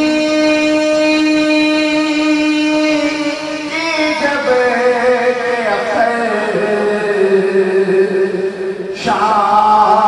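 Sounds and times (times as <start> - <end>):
man chanting a long note: 0.0 - 10.0.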